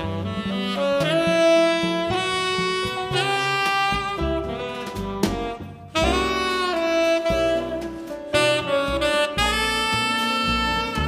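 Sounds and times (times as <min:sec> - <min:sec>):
plucked upright bass: 0:00.0 - 0:11.0
tenor saxophone jazz melody: 0:00.0 - 0:11.0.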